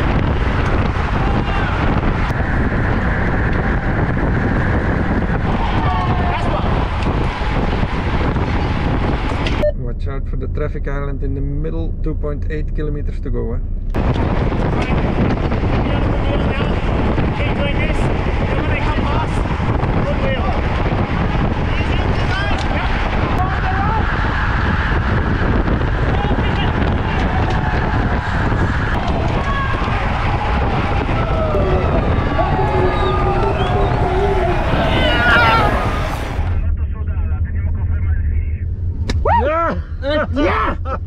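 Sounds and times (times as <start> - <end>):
wind rush on bike microphone: 0.0 - 9.6, 13.9 - 36.7
car low drone: 0.0 - 41.0
scraps of voices: 25.9 - 37.6.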